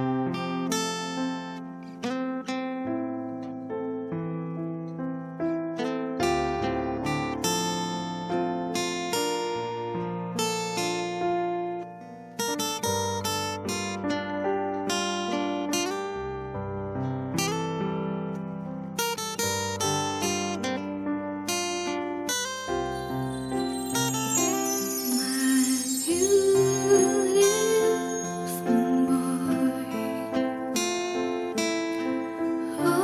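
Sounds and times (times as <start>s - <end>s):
acoustic guitar strummed and picked: 0.0s - 33.0s.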